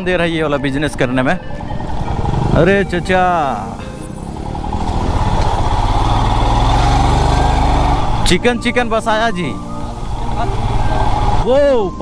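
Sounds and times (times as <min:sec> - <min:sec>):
motorcycle engine running: 0:01.7 - 0:11.5.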